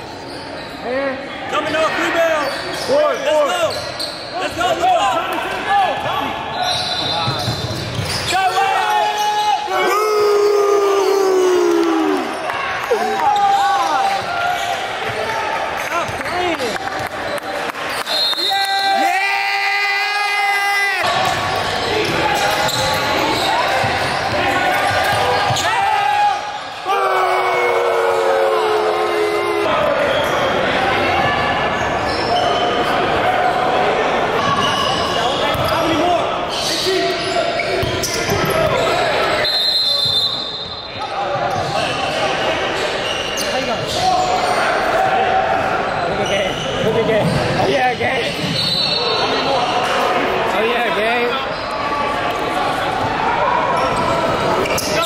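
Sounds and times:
echoing voices and shouts: 0:00.8 - 0:55.0.

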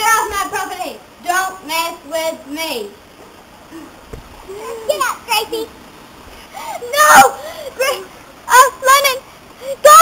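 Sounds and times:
short thump: 0:04.1 - 0:04.4.

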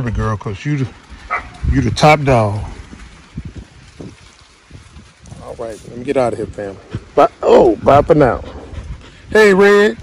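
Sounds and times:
wind rumble on microphone: 0:00.9 - 0:10.0.

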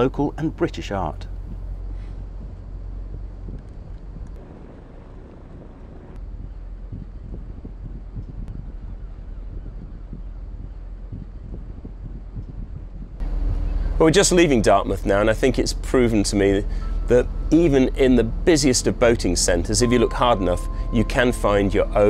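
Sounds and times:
boat engines rumbling: 0:00.0 - 0:22.0
wind buffeting microphone: 0:00.7 - 0:22.0.

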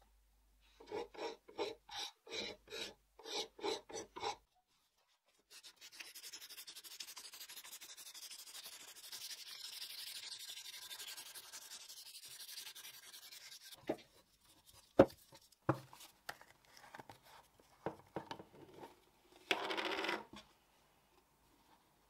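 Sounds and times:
sandpaper rasping on handle: 0:05.5 - 0:13.8.

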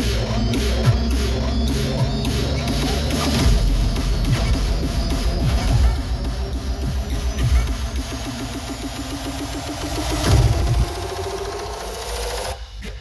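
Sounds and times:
fast electronic dance music: 0:00.0 - 0:13.0.

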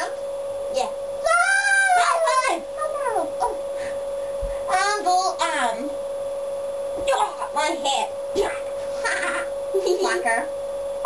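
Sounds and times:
steady tone humming: 0:00.0 - 0:11.0.

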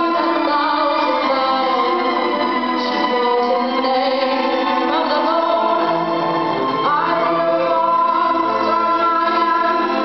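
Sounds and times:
string ensemble playing chords: 0:00.0 - 0:10.0.

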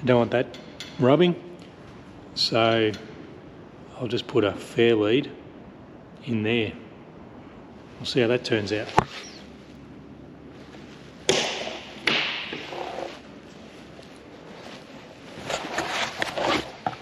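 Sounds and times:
fabric rubbing on camera: 0:08.7 - 0:09.8, 0:12.6 - 0:17.0.

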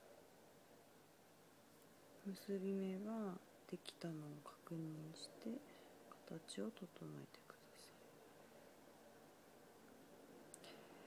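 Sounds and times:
person talking: 0:02.2 - 0:08.0.

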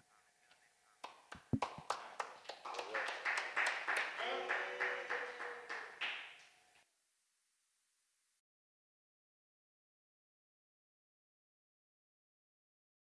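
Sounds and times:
small group applauding: 0:01.0 - 0:06.6
voices calling out: 0:04.1 - 0:06.0.

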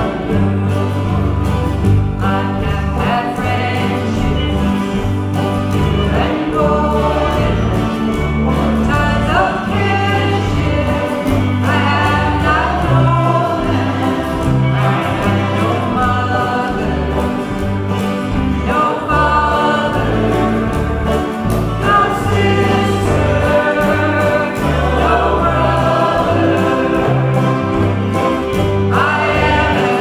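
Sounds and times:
woman singing folk song: 0:00.0 - 0:27.8
strummed acoustic guitars: 0:00.0 - 0:30.0.

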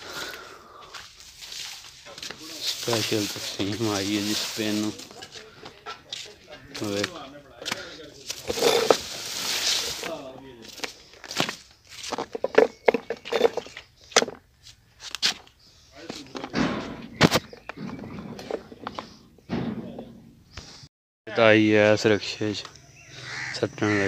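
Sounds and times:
man talking: 0:02.1 - 0:09.0, 0:09.8 - 0:10.9, 0:15.9 - 0:16.7, 0:21.3 - 0:22.7, 0:23.5 - 0:24.0.

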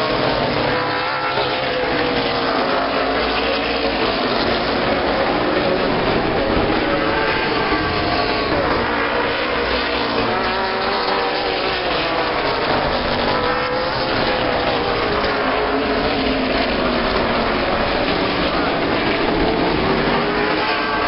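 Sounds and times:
race car engines at high revs: 0:00.0 - 0:21.0.

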